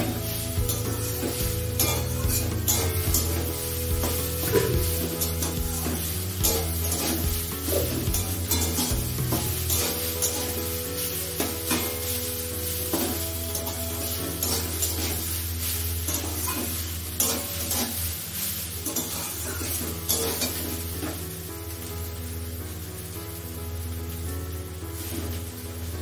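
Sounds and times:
background music: 0.0 - 26.0
food sizzling in a pan: 0.0 - 26.0
metal spatula scraping pan: 0.3 - 12.2, 16.1 - 18.1, 18.8 - 21.2.

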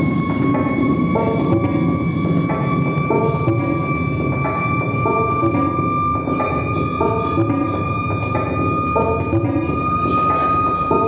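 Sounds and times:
high electronic drone: 0.0 - 11.0.

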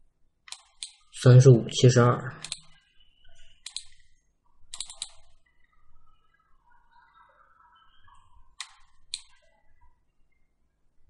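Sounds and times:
computer mouse clicks: 0.5 - 1.1, 2.4 - 4.1, 4.7 - 5.5, 8.6 - 9.6.

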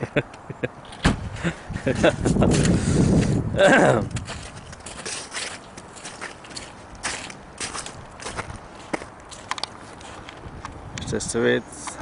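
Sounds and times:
footsteps crunching on snow: 1.9 - 10.6.

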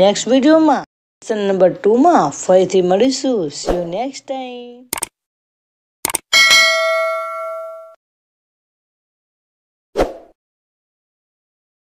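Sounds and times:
quick double click: 4.9 - 5.1, 6.0 - 6.2
bright bell ding: 6.3 - 8.0.

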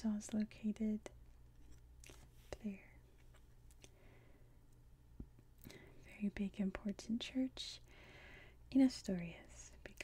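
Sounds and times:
woman whispering: 2.5 - 3.1, 6.0 - 7.8, 8.7 - 10.0.

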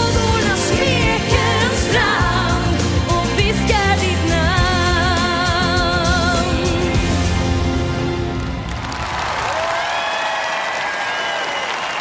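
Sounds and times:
woman singing pop vocal: 0.0 - 7.3
backing band with bass and drums: 0.0 - 8.6.

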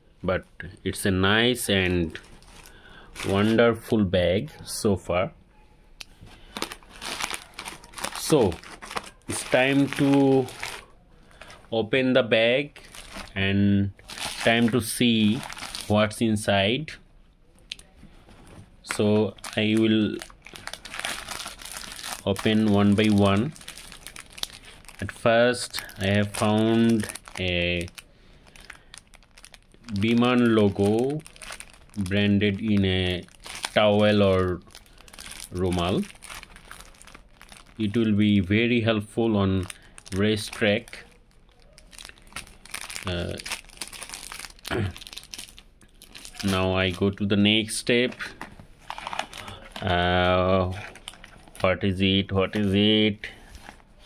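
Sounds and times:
plastic packet crinkling: 2.0 - 3.6, 6.3 - 11.7, 12.6 - 13.4, 14.0 - 16.2, 17.7 - 38.6, 39.6 - 51.7
cloth bag rustling: 6.4 - 10.8.

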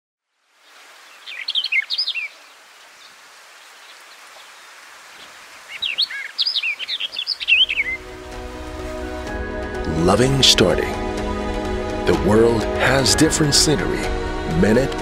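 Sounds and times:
steady outdoor hiss: 0.3 - 15.0
songbird chirping: 0.5 - 15.0.

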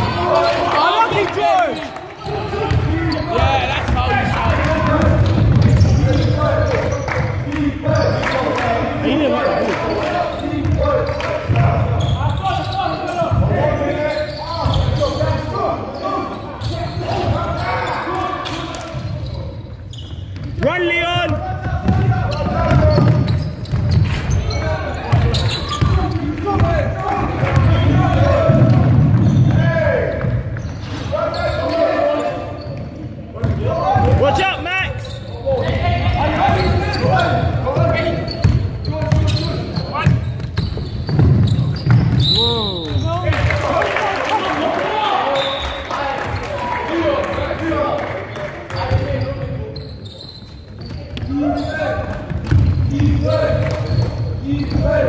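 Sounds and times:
basketball bouncing on wooden court: 2.2 - 6.9, 19.9 - 30.7, 35.5 - 42.3, 50.4 - 54.9.

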